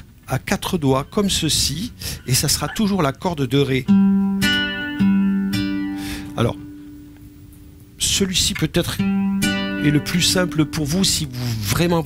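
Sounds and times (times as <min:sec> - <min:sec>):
nylon-string guitar chord: 0:03.9 - 0:07.6, 0:08.9 - 0:11.6.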